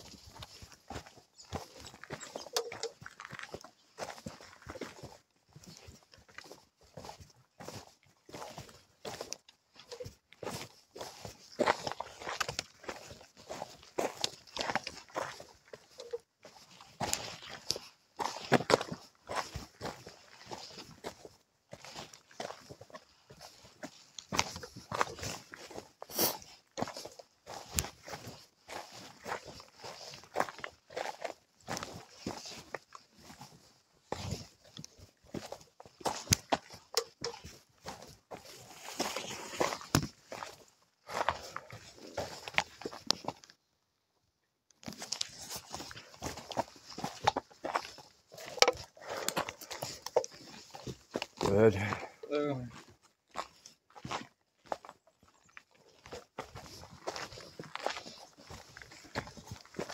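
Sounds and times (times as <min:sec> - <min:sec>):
footsteps on a trail: 0:00.0 - 0:44.0, 0:44.7 - 0:59.9.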